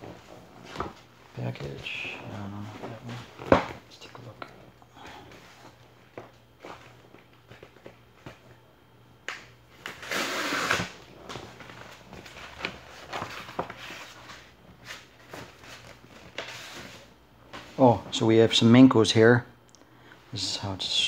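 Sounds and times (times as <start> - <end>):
cardboard tearing rip: 9.8 - 11.0
cardboard envelope rustling: 11.3 - 17.0.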